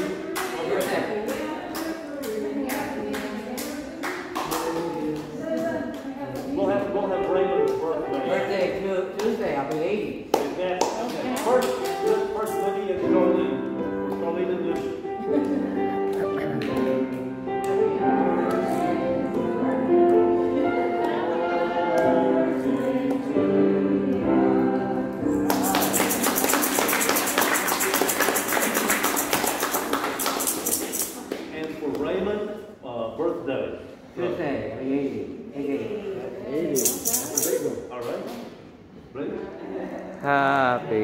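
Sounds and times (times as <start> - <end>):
group singing: 0.0 - 6.9, 17.7 - 31.3
sharp hand claps: 9.2 - 12.7, 25.4 - 32.2
congregation applauding: 25.4 - 31.6.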